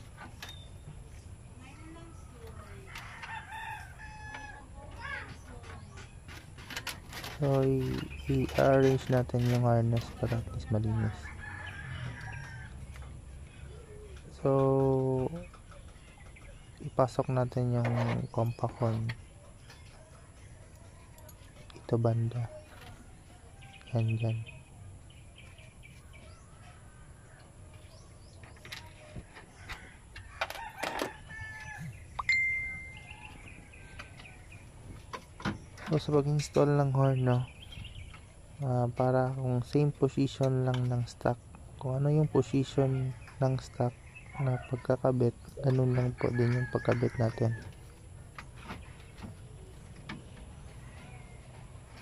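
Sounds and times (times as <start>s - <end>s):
rooster crowing: 2.8s - 4.7s, 10.9s - 13.0s, 29.6s - 32.0s, 45.8s - 47.8s.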